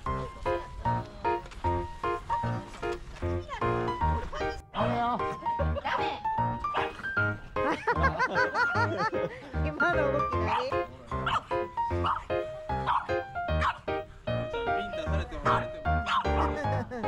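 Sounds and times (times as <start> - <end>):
dogs barking: 6.7 - 7.1, 10.4 - 14.0, 15.4 - 16.6.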